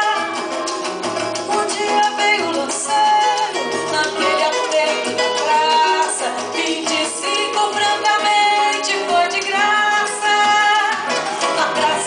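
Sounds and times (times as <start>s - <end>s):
woman singing into a microphone: 0.0s - 0.4s, 1.5s - 12.0s
samba band with conga drums: 0.0s - 12.0s.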